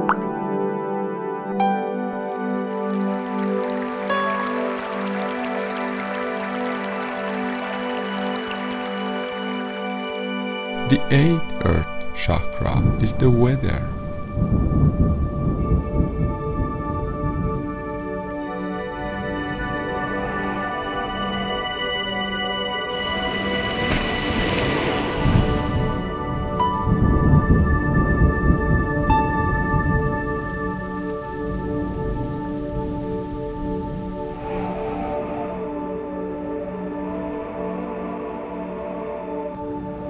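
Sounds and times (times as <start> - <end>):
soft background music: 0.0 - 40.0
rain: 2.1 - 10.6, 28.5 - 35.2.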